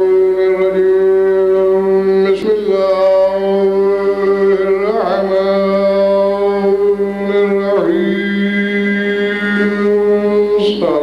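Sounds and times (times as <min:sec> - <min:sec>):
man chanting held notes: 0:00.0 - 0:11.0.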